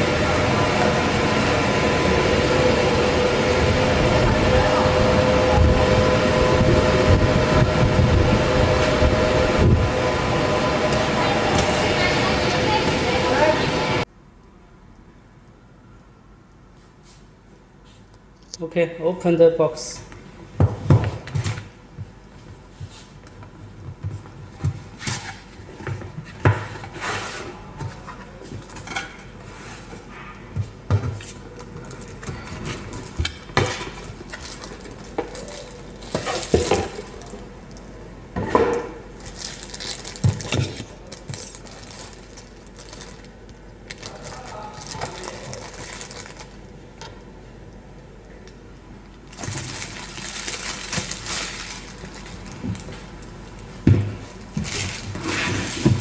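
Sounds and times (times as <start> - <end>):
rustling of packaging: 33.9 - 37.7, 39.1 - 46.8, 49.2 - 53.4, 54.3 - 56.0.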